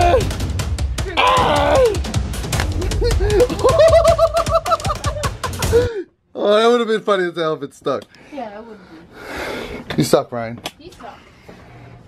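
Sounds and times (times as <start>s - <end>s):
boy giggling: 2.8s - 6.0s.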